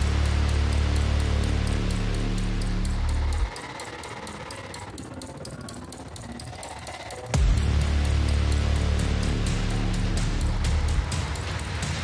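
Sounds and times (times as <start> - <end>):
electronic music: 0.0 - 12.0
ticking percussion: 0.0 - 12.0.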